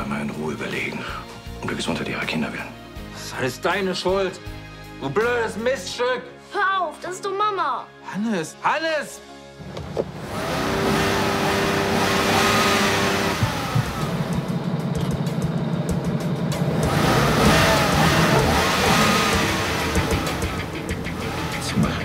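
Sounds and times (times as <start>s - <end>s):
music playing: 0.0s - 22.0s
car engine revving: 9.6s - 22.0s.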